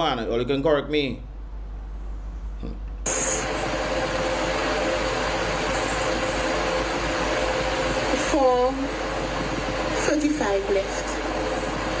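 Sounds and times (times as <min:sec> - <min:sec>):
faint hum: 0:00.0 - 0:12.0
loud rushing noise: 0:03.1 - 0:12.0.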